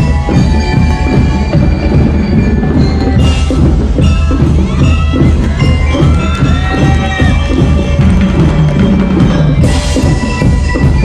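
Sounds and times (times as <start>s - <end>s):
drums keeping steady beat: 0.0s - 11.0s
ringing bell-lyre notes: 0.0s - 11.0s.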